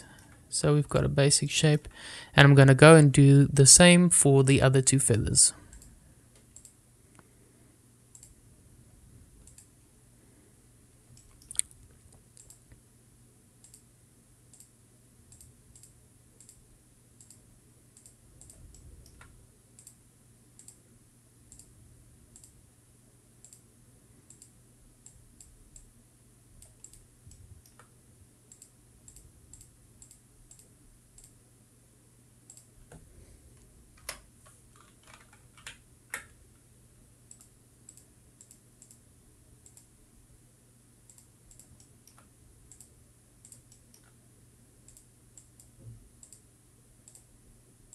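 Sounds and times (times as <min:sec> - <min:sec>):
faint low hum: 0:00.0 - 0:47.9
computer mouse clicking: 0:05.7 - 0:06.8, 0:08.1 - 0:08.4, 0:09.4 - 0:09.7, 0:12.4 - 0:12.8, 0:13.6 - 0:13.9, 0:14.5 - 0:14.7, 0:15.3 - 0:16.6, 0:17.2 - 0:20.0, 0:20.6 - 0:20.8, 0:21.5 - 0:21.7, 0:22.3 - 0:22.6, 0:23.4 - 0:23.7, 0:24.3 - 0:25.9, 0:26.6 - 0:27.9, 0:28.5 - 0:31.4, 0:32.5 - 0:33.0, 0:37.3 - 0:39.0, 0:39.6 - 0:39.9, 0:41.1 - 0:44.2, 0:44.8 - 0:47.3.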